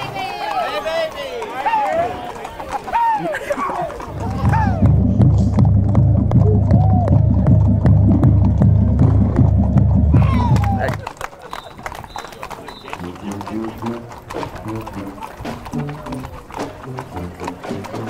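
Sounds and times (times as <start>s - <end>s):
horse hooves clopping on asphalt: 0.0s - 18.0s.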